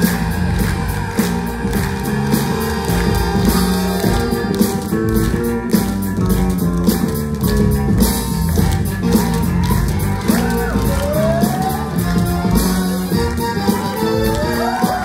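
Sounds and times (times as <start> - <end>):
backing music with steady beat: 0.0 - 15.0.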